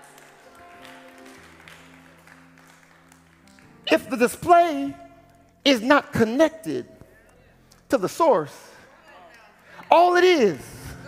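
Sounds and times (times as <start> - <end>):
man's voice: 3.9 - 8.9, 9.7 - 11.0.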